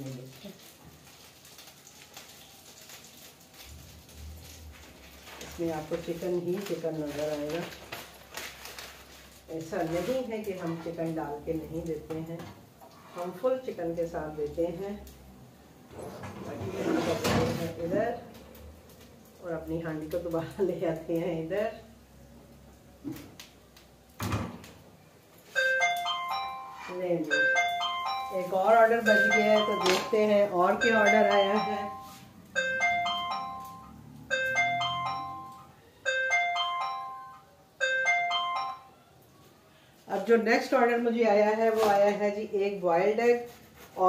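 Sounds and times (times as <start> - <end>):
frying pan moved on stove: 15.9 - 18.2
electronic notification chime: 25.6 - 38.9.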